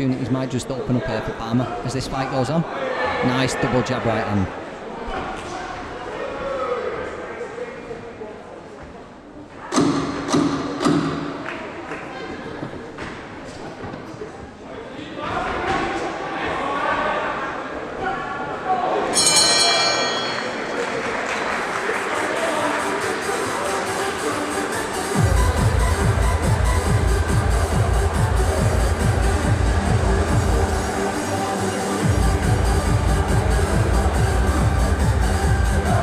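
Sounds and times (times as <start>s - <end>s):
crowd voices: 0.0s - 36.0s
bell ringing: 19.2s - 21.4s
music: 19.2s - 36.0s.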